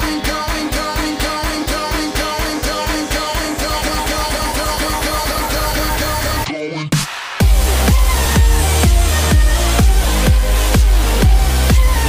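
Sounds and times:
bass and drum pulse: 0.0s - 6.4s, 7.0s - 12.0s
repeating synth riff: 7.4s - 12.0s.

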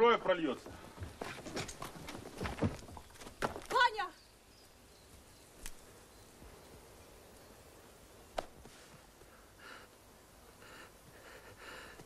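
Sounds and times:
sharp knocks and dull thuds: 0.5s - 3.9s.

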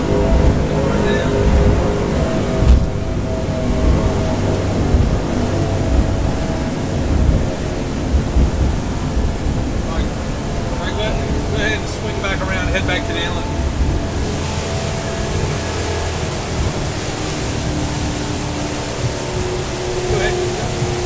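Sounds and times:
low buffeting: 0.0s - 21.0s
outboard engines droning: 0.0s - 21.0s
water rushing: 0.0s - 21.0s.

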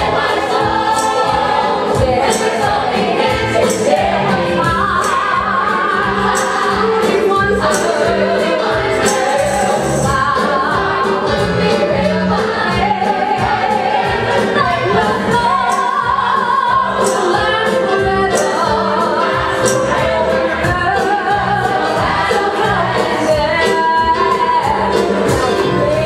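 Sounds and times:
chorus singing: 0.0s - 26.0s.

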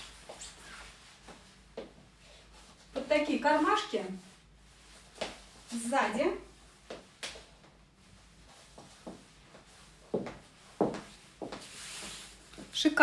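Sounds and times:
soft rustle: 0.0s - 13.0s
high-heeled footsteps on hard floor: 8.8s - 11.7s.

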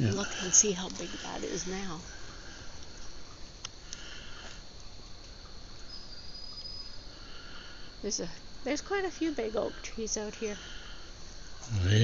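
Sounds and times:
insects trilling: 0.0s - 12.0s
short high insect call: 0.0s - 12.0s.

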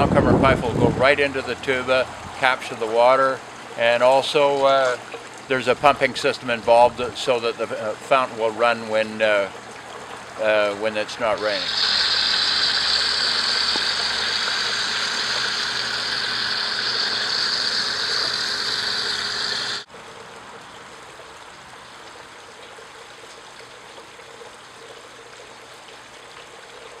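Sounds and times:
water splashing in fountain: 7.2s - 27.0s.

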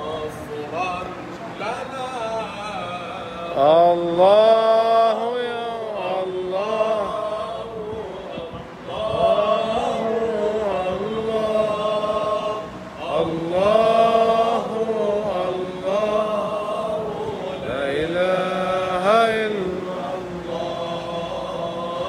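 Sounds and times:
men chanting unaccompanied: 0.0s - 22.0s.

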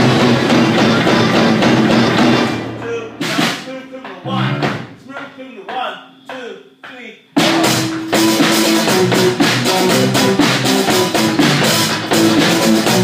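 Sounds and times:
rock band playing: 0.0s - 5.0s, 7.4s - 13.0s.

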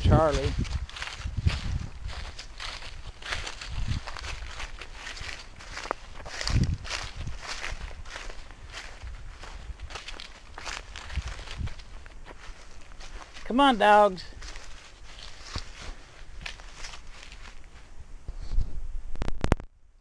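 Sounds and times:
footsteps in dry grass and leaves: 0.0s - 19.4s.

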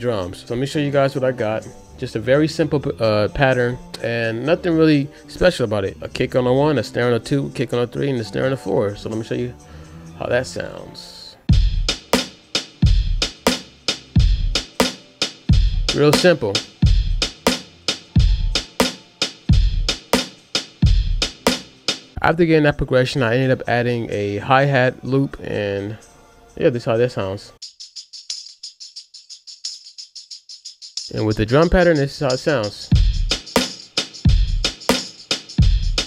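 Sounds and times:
deep kick drum: 11.5s - 12.0s, 12.8s - 13.4s, 14.2s - 14.7s, 15.5s - 16.0s, 16.8s - 17.4s, 18.2s - 18.6s, 19.5s - 20.0s, 20.8s - 21.3s, 32.9s - 33.4s, 34.3s - 34.7s, 35.6s - 36.0s
hi-hat ticks: 11.5s - 22.1s, 27.6s - 36.0s
snare drum: 11.5s - 22.1s, 32.9s - 36.0s
drum machine loop: 11.5s - 22.2s, 27.6s - 36.0s.

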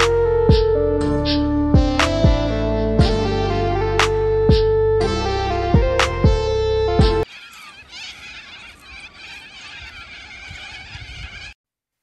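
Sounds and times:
flock of birds calling: 7.2s - 11.6s.

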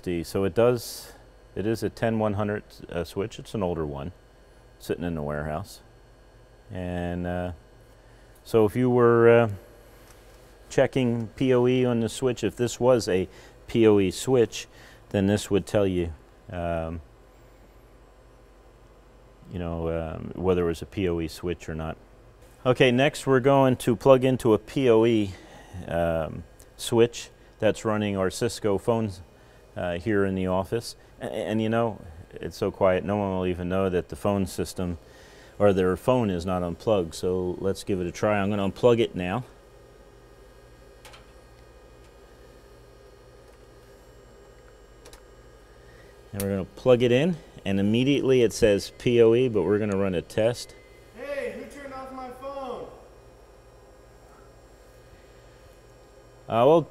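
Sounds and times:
faint low hum with hiss: 0.0s - 56.9s
patch cable click: 41.0s - 41.4s.

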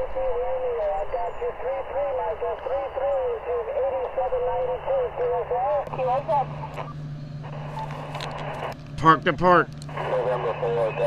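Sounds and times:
low steady hum: 0.0s - 11.0s
radio voice from speaker: 0.0s - 11.0s
receiver hiss: 0.0s - 11.0s.

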